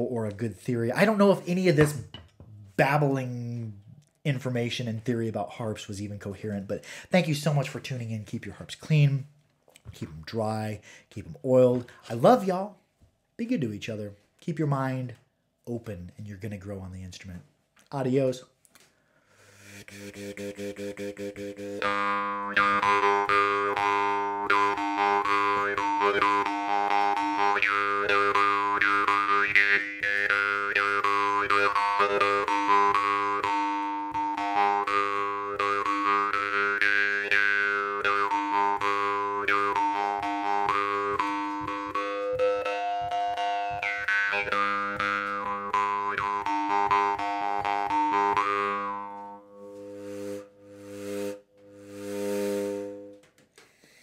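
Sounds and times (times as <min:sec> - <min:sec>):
jaw harp plucking: 0:19.8 - 0:53.3.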